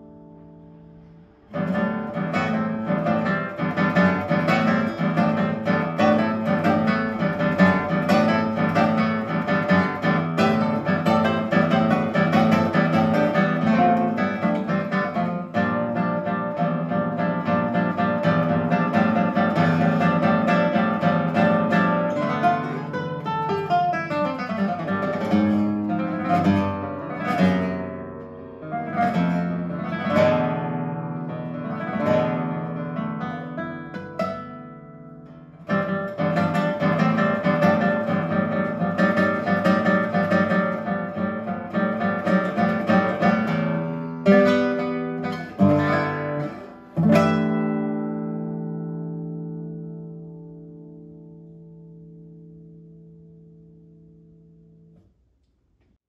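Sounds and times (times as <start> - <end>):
classical guitar fingerstyle: 0.0 - 55.2.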